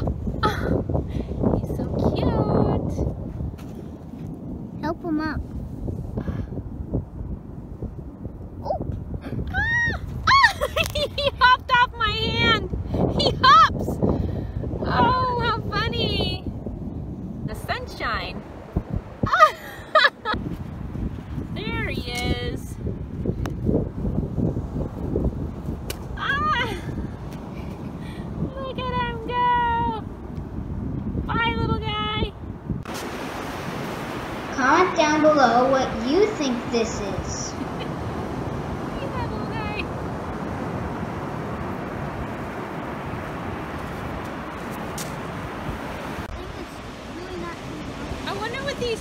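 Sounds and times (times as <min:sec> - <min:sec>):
wind rumble on microphone: 0:00.0 - 0:49.0.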